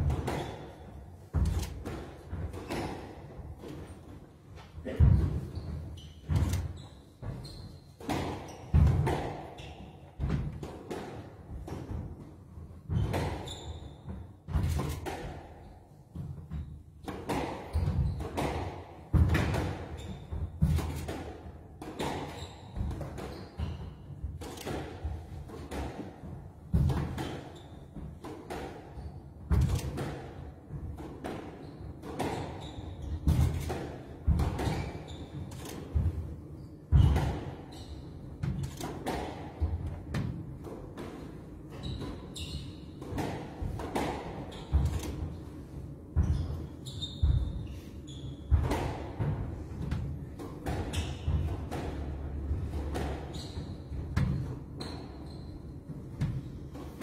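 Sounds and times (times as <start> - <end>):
squash ball hits echoing: 0.0 - 4.0, 4.8 - 57.0.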